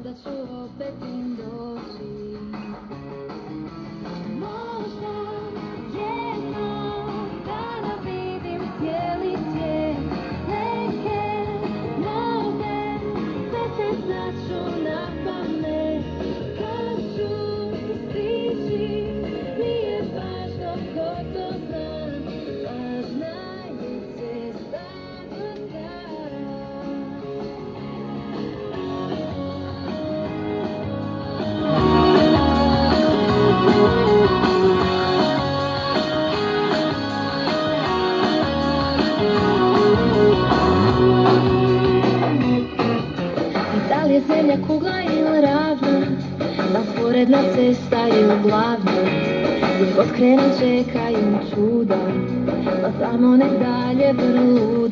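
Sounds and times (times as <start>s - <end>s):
rock-pop song on radio: 0.0s - 54.9s.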